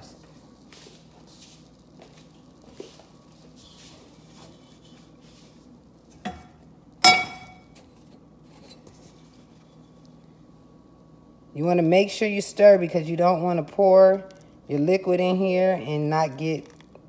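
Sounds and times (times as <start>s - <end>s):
metal cookware clanking: 6.3s - 7.7s.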